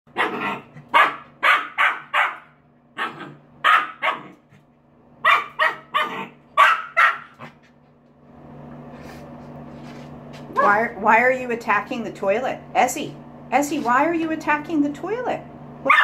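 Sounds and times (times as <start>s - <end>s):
puppy barking: 0.1s - 4.4s, 5.2s - 7.6s.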